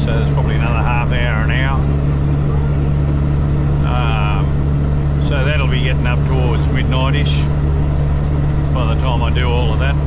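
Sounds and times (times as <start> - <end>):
driver vocal sound: 0.0 - 3.1, 3.8 - 4.6, 5.2 - 7.6, 8.7 - 10.0
truck engine and road drone: 0.0 - 10.0.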